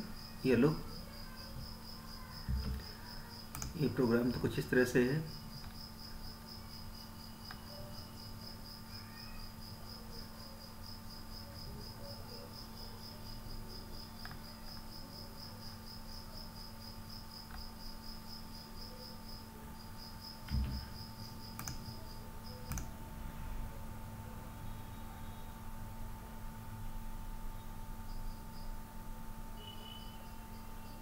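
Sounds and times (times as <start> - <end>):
cricket chirping: 0.0 - 22.9, 24.6 - 26.4, 27.2 - 31.0
low electrical hum: 0.0 - 31.0
soft thump: 2.4 - 2.8, 20.5 - 20.9.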